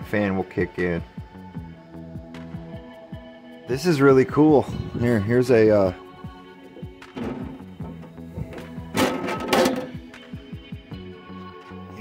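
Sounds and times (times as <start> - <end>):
background music with held notes: 0.0 - 12.0
printer lid thunk and rustle: 7.2 - 10.0.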